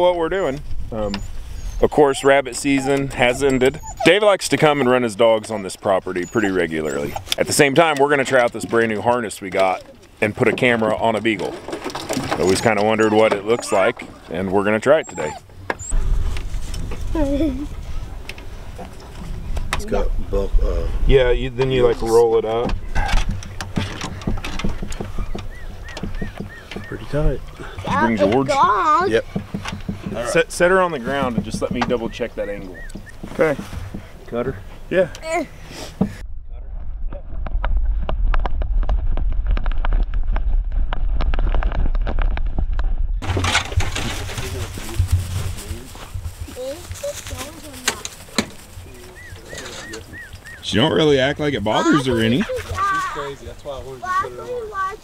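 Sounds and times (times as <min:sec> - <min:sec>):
dog whimpering: 0:01.1 - 0:07.5, 0:12.4 - 0:16.0
faint voices: 0:01.8 - 0:15.5, 0:43.5 - 0:55.0
harness clicks and rattles: 0:07.2 - 0:14.4, 0:22.6 - 0:32.0, 0:43.2 - 0:45.7
rustling through grass and brush: 0:15.4 - 0:19.8, 0:43.2 - 0:50.7.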